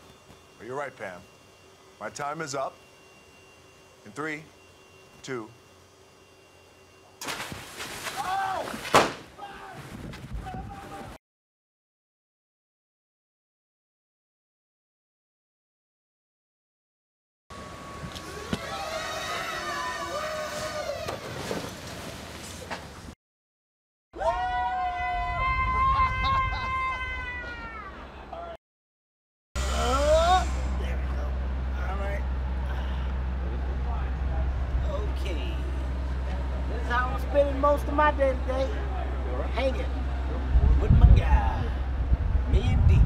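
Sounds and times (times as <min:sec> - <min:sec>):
man screaming high-pitched: 0:08.2 - 0:08.8, 0:29.6 - 0:30.8
people shouting: 0:08.2 - 0:09.8, 0:18.3 - 0:21.2, 0:24.2 - 0:28.5, 0:29.6 - 0:30.7
low rumble: 0:29.6 - 0:36.8, 0:40.0 - 0:43.0.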